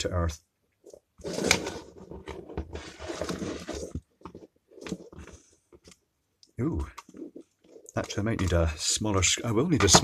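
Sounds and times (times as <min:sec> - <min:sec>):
plastic parts scraping on wood: 0:00.9 - 0:06.0.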